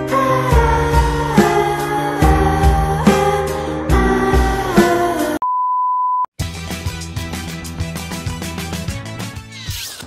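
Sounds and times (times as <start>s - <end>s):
music: 0.0s - 5.4s, 6.4s - 10.0s
steady electronic beep: 5.4s - 6.3s.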